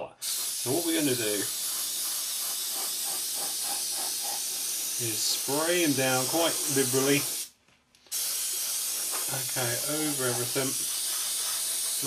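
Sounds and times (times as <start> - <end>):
spray hissing: 0.2 - 7.5, 8.1 - 12.0.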